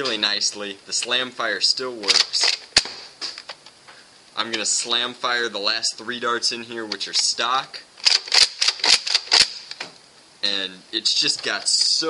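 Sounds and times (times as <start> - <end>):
toy blaster pump clacking: 2.1 - 2.9, 8.0 - 9.8
toy blaster firing darts: 2.1 - 3.1, 8.0 - 9.9.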